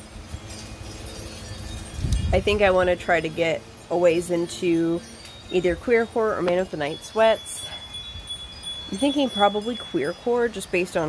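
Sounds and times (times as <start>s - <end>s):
wind rumble on microphone: 0.0s - 3.6s
wind chimes tinkling: 0.0s - 11.0s.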